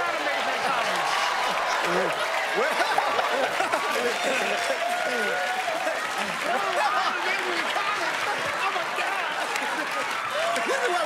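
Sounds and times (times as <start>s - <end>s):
audience applauding: 0.0s - 11.0s
audience laughing: 0.6s - 11.0s.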